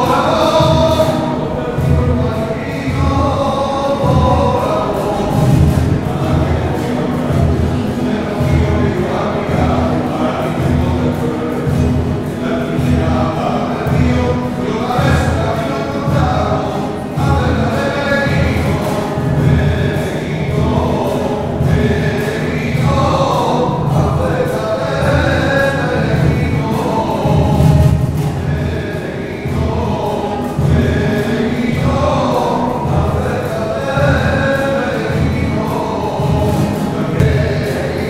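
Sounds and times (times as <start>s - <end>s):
choir singing a hymn: 0.0s - 38.0s
low accompaniment: 0.0s - 38.0s.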